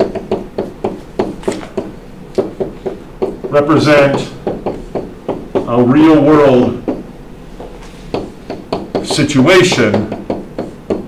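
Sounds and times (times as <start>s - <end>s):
stylus tapping on tablet: 0.0s - 5.7s, 6.8s - 11.0s.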